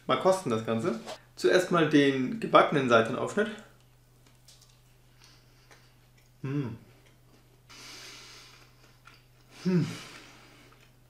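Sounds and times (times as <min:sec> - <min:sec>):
person chewing food: 0:03.8 - 0:07.7, 0:08.3 - 0:11.0.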